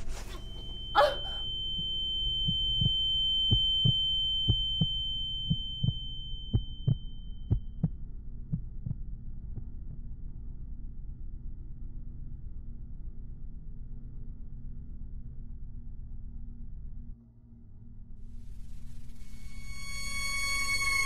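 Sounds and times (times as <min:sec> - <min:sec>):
thin high ringing tone: 0:00.0 - 0:07.5, 0:18.5 - 0:21.0
low hum: 0:00.0 - 0:21.0
short vocal sound: 0:01.0 - 0:01.4.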